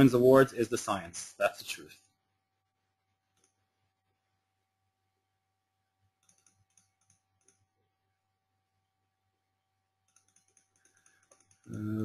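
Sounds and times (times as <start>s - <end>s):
faint clicks: 3.3s - 3.6s, 6.2s - 7.7s, 10.1s - 11.8s.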